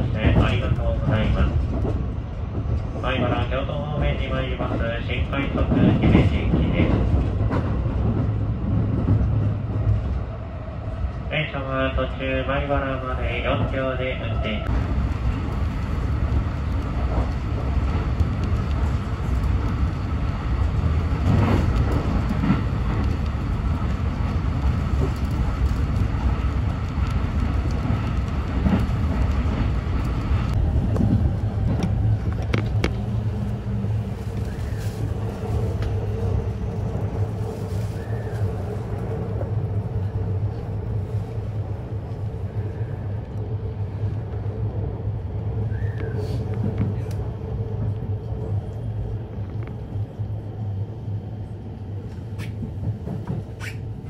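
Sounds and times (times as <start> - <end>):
train wheels rumbling on rails: 0.0 - 54.0.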